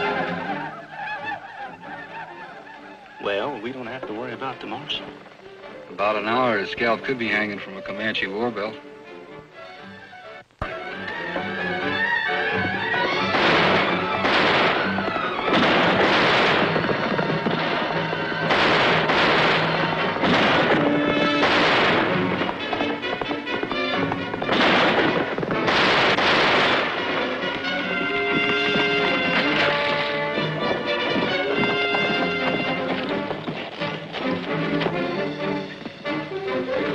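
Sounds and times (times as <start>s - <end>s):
orchestral music: 0.0s - 36.9s.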